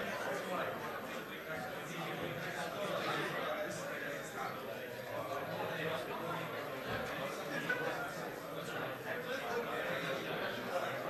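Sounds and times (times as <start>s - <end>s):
indistinct background talking: 0.0s - 11.0s.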